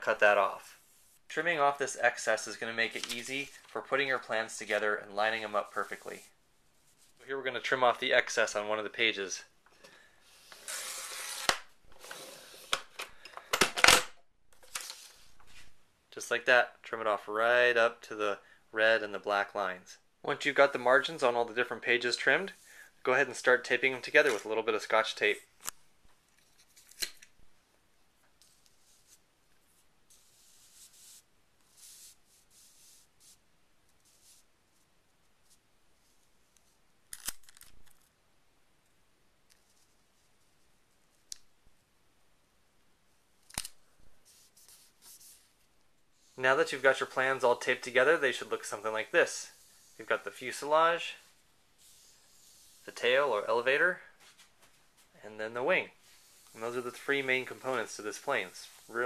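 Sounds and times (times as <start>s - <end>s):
tape peeling rustle: 26.3s - 27.3s.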